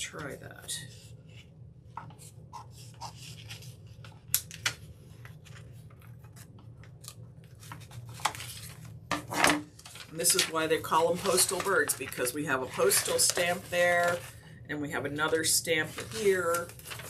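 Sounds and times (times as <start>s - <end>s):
paper rustling: 2.0s - 14.4s, 15.8s - 17.0s.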